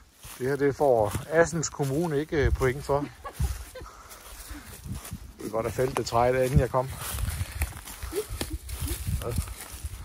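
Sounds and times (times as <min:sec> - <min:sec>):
footsteps on dry leaves: 0:00.0 - 0:10.0
leaves rustling: 0:00.0 - 0:10.0.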